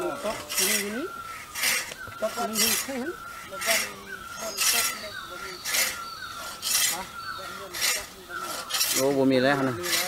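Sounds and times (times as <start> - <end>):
hand saw ripping wood: 0.0 - 10.0.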